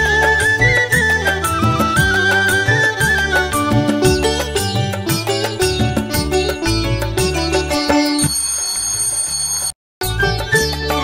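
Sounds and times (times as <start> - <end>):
background music: 0.0 - 8.4
high bell-like chime: 7.9 - 9.8.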